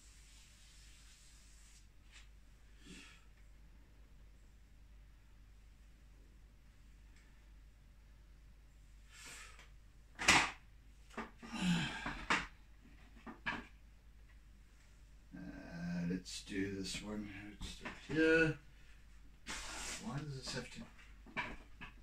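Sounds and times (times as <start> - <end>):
man muttering: 15.4 - 18.6.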